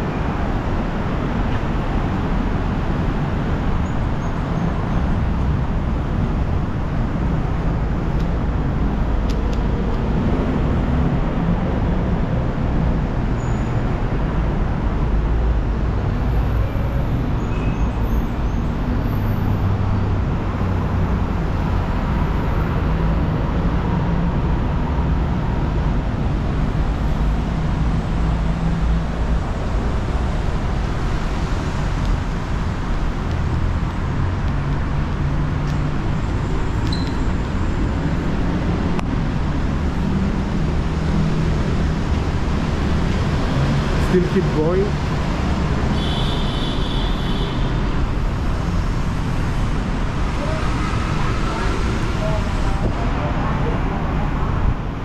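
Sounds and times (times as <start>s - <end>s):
city road traffic: 0.0s - 55.0s.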